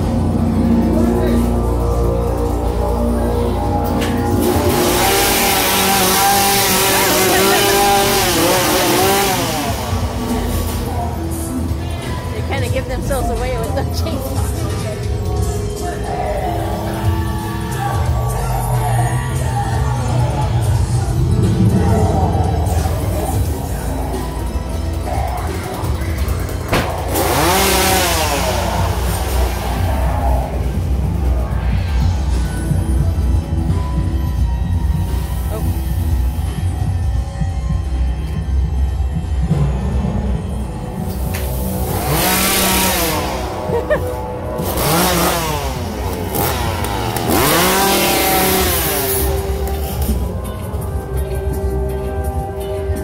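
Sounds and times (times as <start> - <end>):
dark music with heavy bass: 0.0 - 53.0
chainsaw revving: 4.0 - 11.5, 26.2 - 30.8, 41.4 - 50.2.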